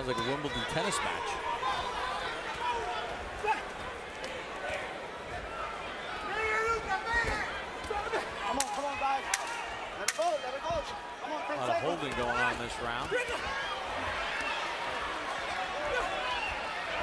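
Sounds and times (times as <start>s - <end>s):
arena crowd noise: 0.0s - 17.0s.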